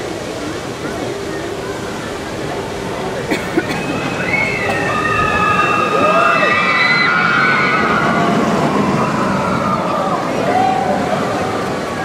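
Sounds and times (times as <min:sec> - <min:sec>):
crowd noise: 0:00.0 - 0:12.0
roller coaster riders screaming: 0:00.0 - 0:12.0
rushing water: 0:00.0 - 0:12.0.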